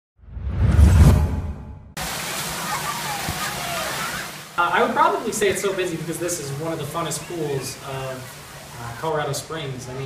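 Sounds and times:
deep whoosh: 0.2s - 2.0s.

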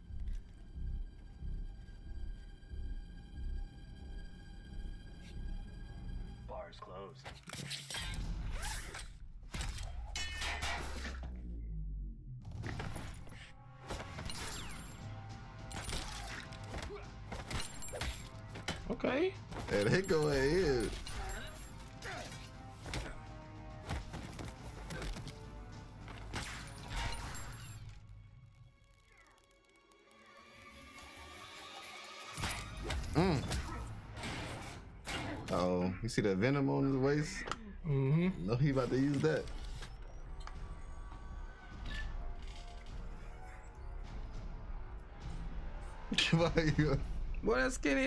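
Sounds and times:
action music: 8.1s - 37.4s, 38.4s - 48.0s.

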